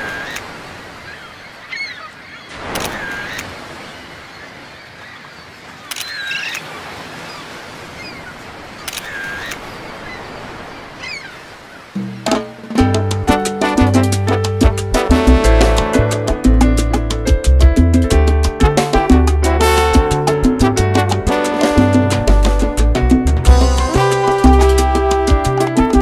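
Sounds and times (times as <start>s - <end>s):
seagulls calling: 0.0s - 12.7s
ocean surf: 0.0s - 26.0s
salsa music: 12.2s - 26.0s.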